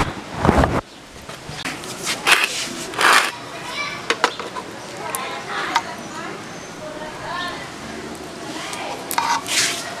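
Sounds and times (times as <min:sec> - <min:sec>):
loud rush of noise: 0:00.0 - 0:04.2
children chattering: 0:01.9 - 0:10.0.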